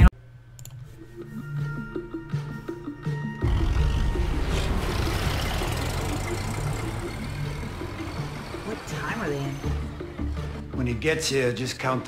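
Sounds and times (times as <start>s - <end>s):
car engine idling: 3.4s - 10.7s.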